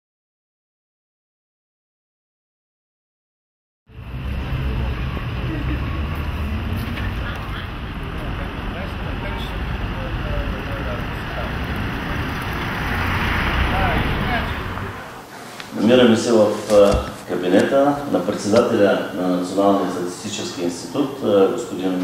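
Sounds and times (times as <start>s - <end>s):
road traffic noise: 3.9s - 17.7s.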